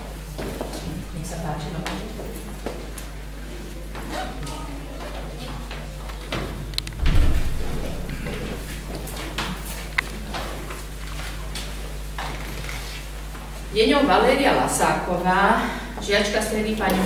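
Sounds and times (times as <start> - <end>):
door thumping shut: 6.9 - 9.8
short low boom: 6.9 - 10.0.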